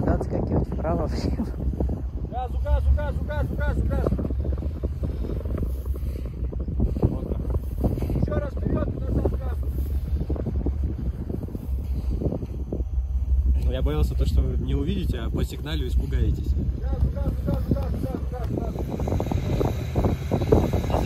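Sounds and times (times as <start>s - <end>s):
wind buffeting microphone: 0.0s - 21.0s
car engine droning: 0.8s - 21.0s.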